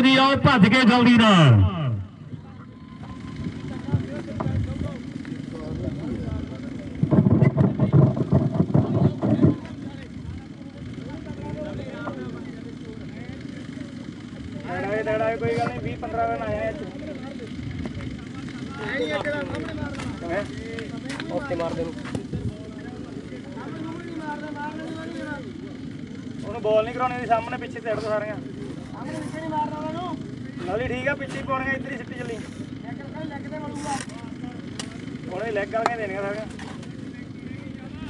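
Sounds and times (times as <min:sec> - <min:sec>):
outdoor rumbling: 0:00.0 - 0:38.0.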